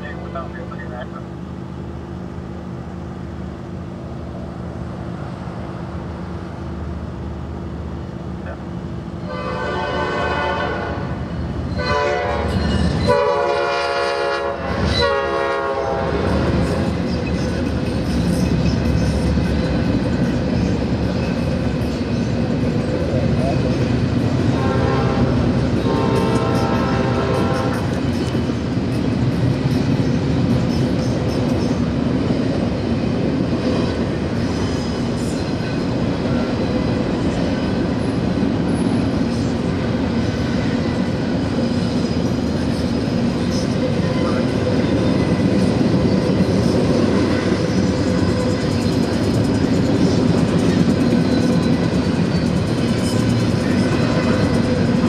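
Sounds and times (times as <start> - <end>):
train rumble and wheel clatter: 0.0 - 55.0
locomotive air horn blasts: 9.3 - 11.1, 11.8 - 12.5, 13.1 - 16.2, 24.6 - 27.8.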